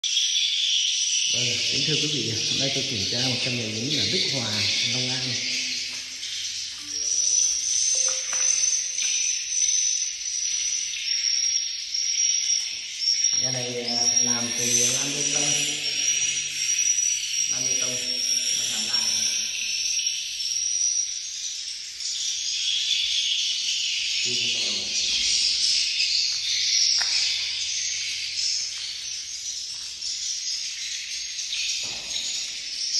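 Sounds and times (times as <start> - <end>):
thin steady high tone: 0.1 - 32.9
swiftlets twittering: 1.1 - 21.0.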